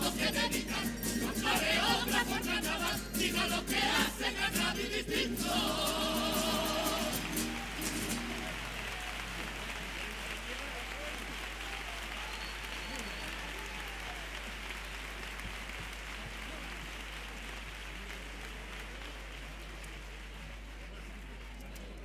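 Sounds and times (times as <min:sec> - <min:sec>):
voices in crowd: 0:00.0 - 0:22.0
audience applauding: 0:05.4 - 0:22.0.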